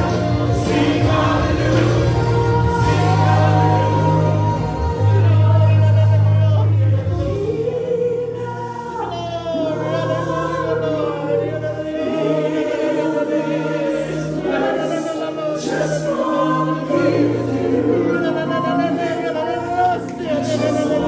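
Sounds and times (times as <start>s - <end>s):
gospel singing voices: 0.0s - 21.0s
instrumental accompaniment: 0.0s - 21.0s.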